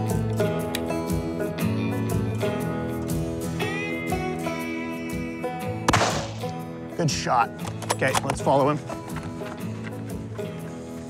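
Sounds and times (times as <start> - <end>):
guitar music: 0.0 - 11.0
rifle shot: 5.9 - 6.6.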